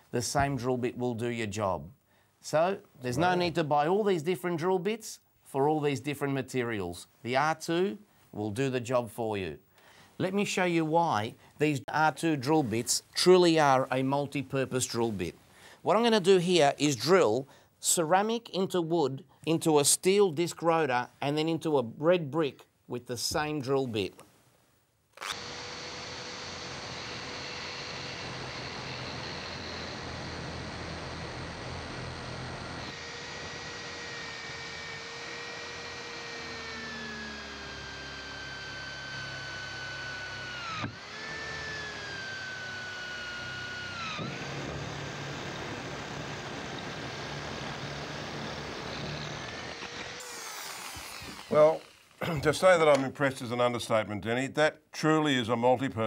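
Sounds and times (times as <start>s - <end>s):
electric drill motor whine: 25.2s - 52.2s.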